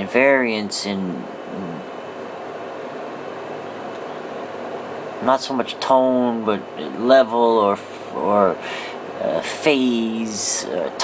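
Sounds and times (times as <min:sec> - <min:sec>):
faint hum: 0:00.0 - 0:11.0
steady background hiss: 0:00.0 - 0:11.0.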